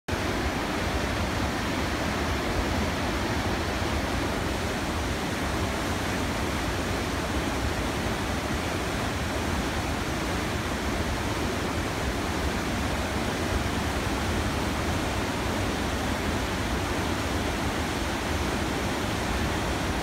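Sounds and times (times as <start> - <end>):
river rapid rushing: 0.1 - 20.0.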